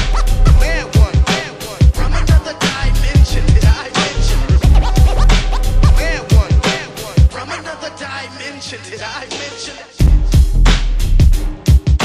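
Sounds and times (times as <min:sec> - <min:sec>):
turntable scratching: 0:00.0 - 0:01.8, 0:02.6 - 0:07.3
hip hop beat: 0:00.0 - 0:12.0.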